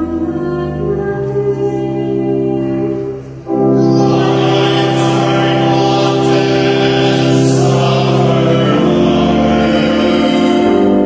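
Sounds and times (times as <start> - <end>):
organ chords: 0.0 - 11.0
voices singing a hymn: 0.0 - 11.0.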